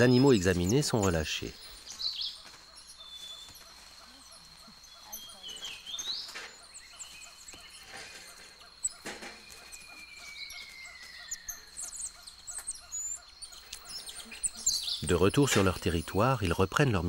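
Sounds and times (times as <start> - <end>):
high insect drone: 0.0 - 17.0.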